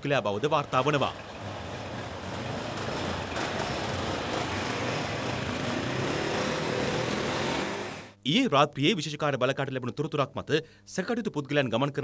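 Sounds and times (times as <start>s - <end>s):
road noise: 0.0s - 8.2s
motorcycle engines revving: 0.6s - 8.2s.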